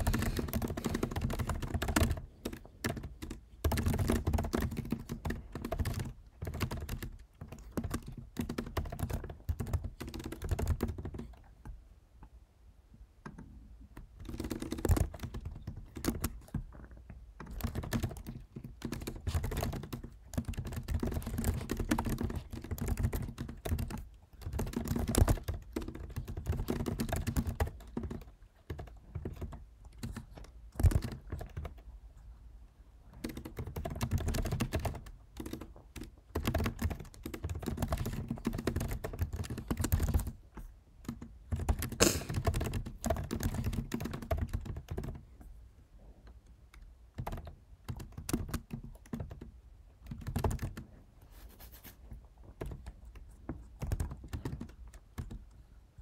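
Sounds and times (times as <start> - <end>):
computer keyboard typing: 0.0 - 11.8, 13.3 - 31.9, 33.0 - 45.3, 46.8 - 51.0, 52.4 - 55.6.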